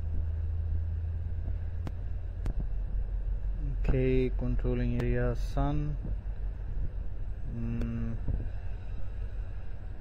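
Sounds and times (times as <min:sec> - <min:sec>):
low electrical hum: 0:00.0 - 0:10.0
man humming: 0:07.5 - 0:08.3.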